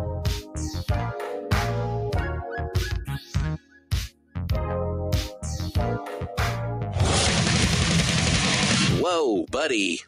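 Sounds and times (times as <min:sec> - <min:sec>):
distorted electric guitar rock music: 0:06.9 - 0:09.0.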